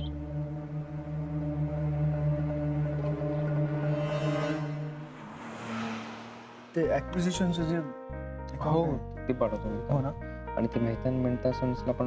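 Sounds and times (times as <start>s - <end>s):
background music chords: 0.0s - 12.0s
whoosh rising in pitch: 2.7s - 6.9s.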